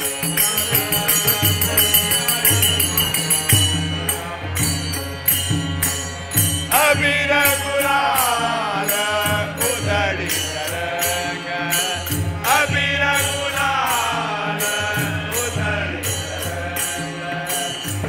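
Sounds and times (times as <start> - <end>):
men singing together: 0.0 - 5.4, 6.7 - 18.0
tabla beat: 0.0 - 18.0.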